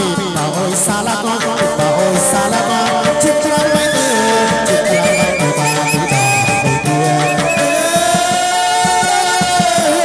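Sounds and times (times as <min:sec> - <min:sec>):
quick steady drum beats: 0:00.0 - 0:10.0.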